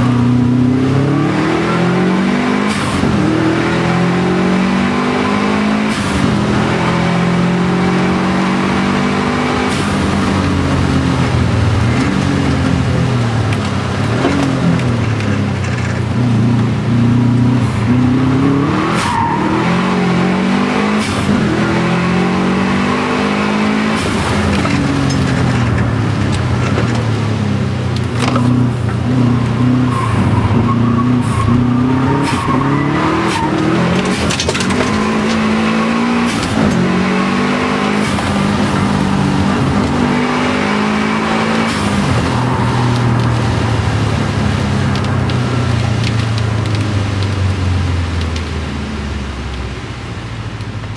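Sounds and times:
car engine revving through gears: 0.0 - 49.5.

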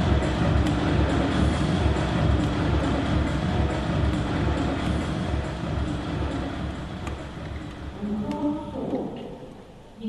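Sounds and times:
air-handling noise: 0.0 - 9.9.

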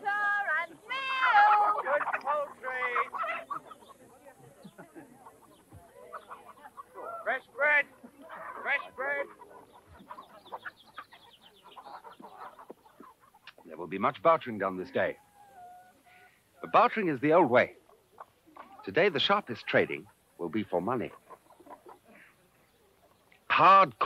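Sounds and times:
people's voices: 0.0 - 15.2
chickens clucking and squawking: 0.0 - 24.0.

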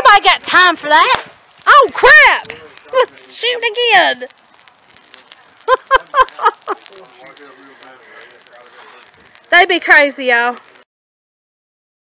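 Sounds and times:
burning leaves crackling: 0.0 - 10.9
person laughing: 5.6 - 7.0.

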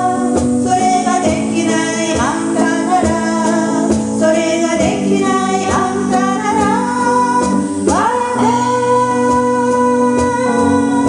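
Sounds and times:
electric guitars: 0.0 - 11.0
woman singing: 0.0 - 11.0.

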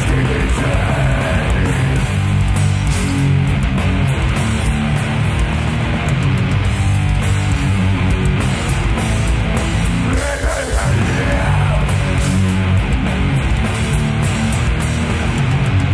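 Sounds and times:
distorted electric guitar: 0.0 - 15.9
live death metal band: 0.0 - 15.9.

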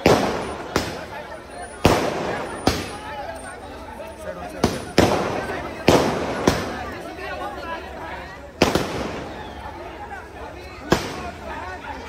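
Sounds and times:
firecrackers banging: 0.0 - 3.2, 4.4 - 7.2, 8.5 - 9.7, 10.8 - 11.5
crowd chatter and shouts: 0.0 - 12.0.

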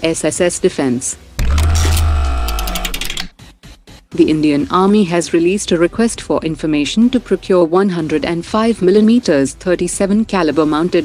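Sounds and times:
deep bass hit with layered tones: 1.4 - 2.9.

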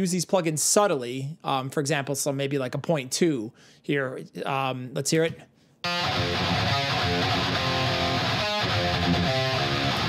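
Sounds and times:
distorted electric guitars metal riff: 5.9 - 10.0.

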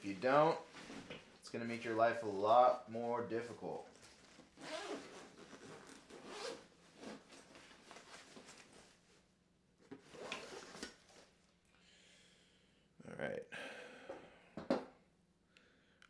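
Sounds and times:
zipper rasping open: 4.6 - 7.6, 10.1 - 10.9.

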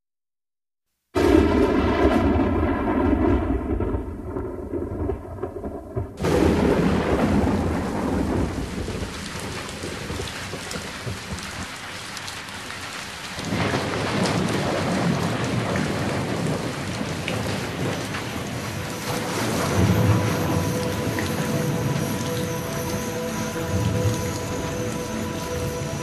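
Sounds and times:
rolling thunder: 1.2 - 11.7, 13.5 - 26.0
steady rain: 6.2 - 26.0.

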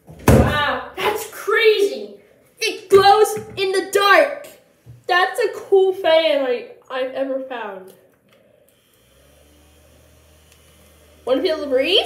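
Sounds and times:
handheld fan motor humming: 8.7 - 12.0.

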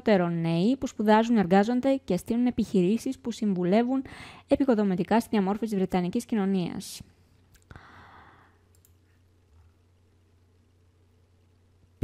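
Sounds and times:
low steady hum: 0.0 - 12.0
short breath out: 7.7 - 8.6
computer mouse clicks: 8.7 - 9.0.

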